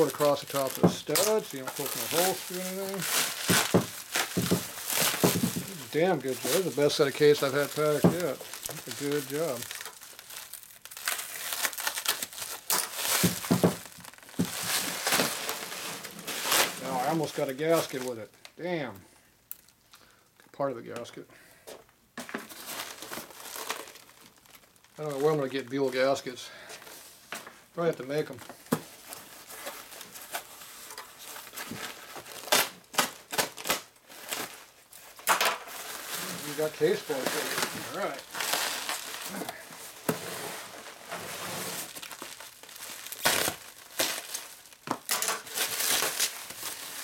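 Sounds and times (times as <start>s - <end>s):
plastic wrap crinkling: 0.0s - 18.6s, 22.2s - 47.0s.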